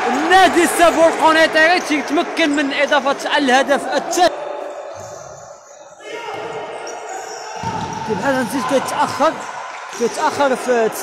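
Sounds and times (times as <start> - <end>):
ball striking wooden court: 7.6 - 8.1.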